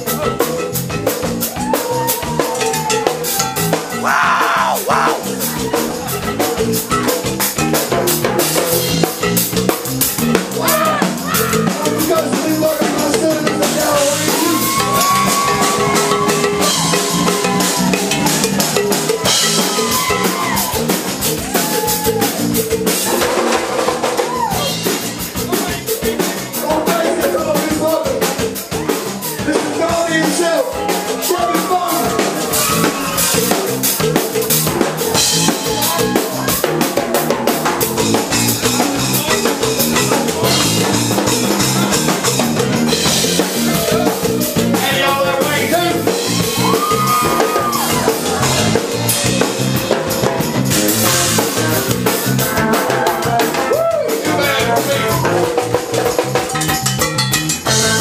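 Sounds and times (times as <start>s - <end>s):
live rock band playing: 0.0s - 58.0s
drum kit hits: 29.4s - 58.0s.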